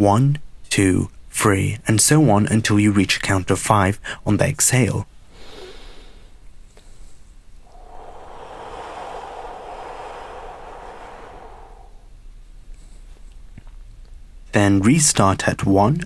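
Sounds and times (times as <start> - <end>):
person breathing slowly: 7.6 - 12.1.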